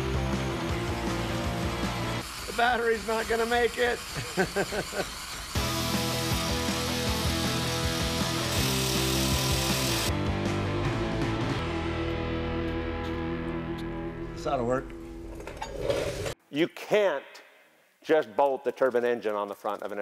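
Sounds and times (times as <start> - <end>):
angle grinder grinding metal pipe: 0.7 - 10.1.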